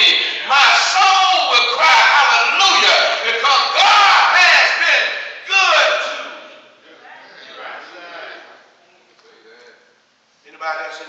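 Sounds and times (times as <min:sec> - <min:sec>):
preacher shouting: 0:00.0 - 0:06.6.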